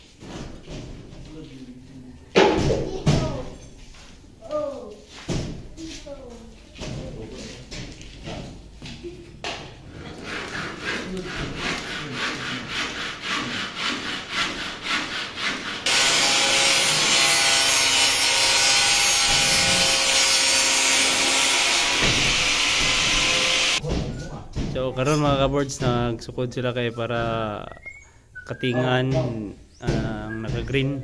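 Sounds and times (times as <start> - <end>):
scraping on ceiling panel: 9.9 - 16.0
angle grinder cutting: 15.8 - 23.8.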